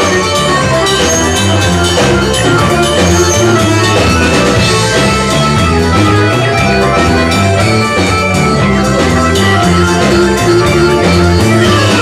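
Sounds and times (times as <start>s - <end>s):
button accordion chords: 0.0s - 12.0s
drum kit beat: 0.0s - 12.0s
live band playing: 0.0s - 12.0s.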